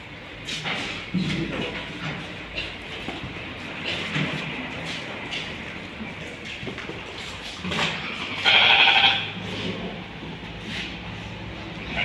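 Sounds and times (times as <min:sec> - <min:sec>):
sheep bleating: 0:08.4 - 0:09.4.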